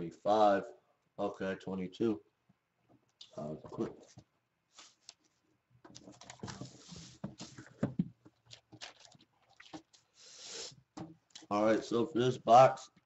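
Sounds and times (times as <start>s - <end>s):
paper rustling: 3.7s - 9.1s.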